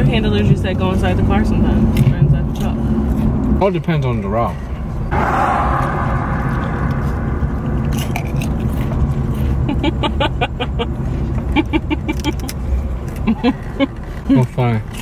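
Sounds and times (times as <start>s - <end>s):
car road and engine rumble: 0.0s - 15.0s.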